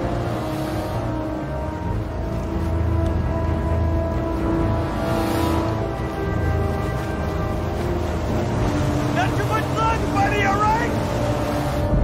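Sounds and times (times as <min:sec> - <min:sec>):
tense orchestral music: 0:00.0 - 0:12.0
man yelling: 0:09.1 - 0:11.0.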